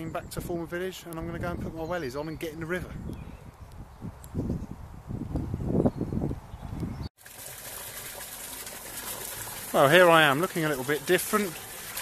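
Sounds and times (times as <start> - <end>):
river water flowing: 7.2 - 12.0.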